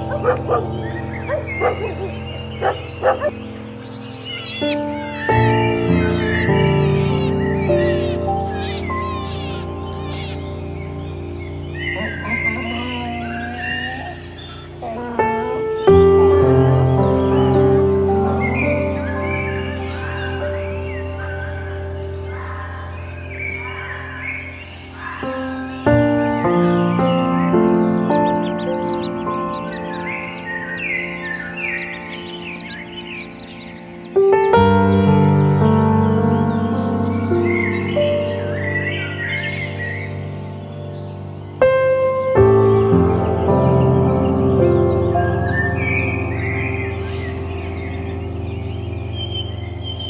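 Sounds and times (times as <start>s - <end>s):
dog barking: 0.0s - 3.4s
background music: 0.0s - 50.0s
birds chirping: 0.0s - 50.0s.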